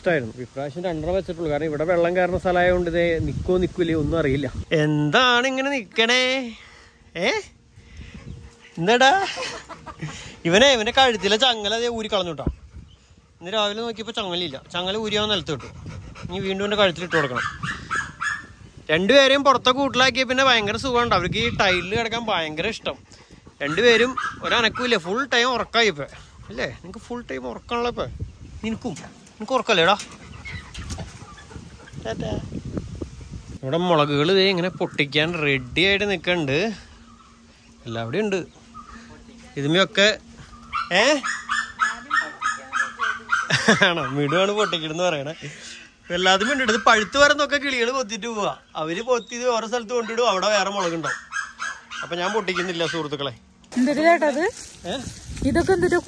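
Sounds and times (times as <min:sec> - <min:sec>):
man talking: 0:13.4 - 0:17.6, 0:43.7 - 0:51.2, 0:52.0 - 0:53.4, 0:54.8 - 0:55.2.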